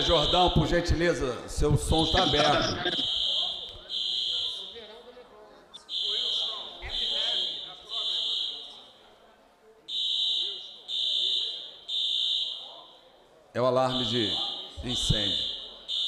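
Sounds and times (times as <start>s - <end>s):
fire alarm beeping: 0.0s - 1.0s, 1.8s - 5.0s, 5.8s - 8.9s, 9.9s - 13.2s, 13.9s - 16.0s.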